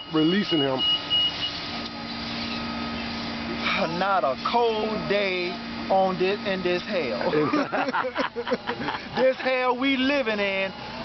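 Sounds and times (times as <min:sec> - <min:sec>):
bus engine idling: 0:00.0 - 0:11.0
street noise: 0:00.0 - 0:11.0.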